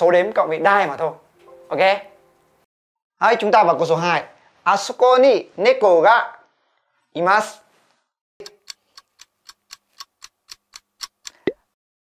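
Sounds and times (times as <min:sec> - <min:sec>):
clock ticking: 0:08.4 - 0:11.5.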